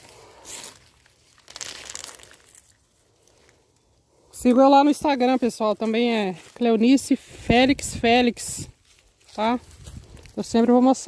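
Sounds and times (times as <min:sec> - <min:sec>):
rustling in dry leaf litter: 0:00.0 - 0:11.0.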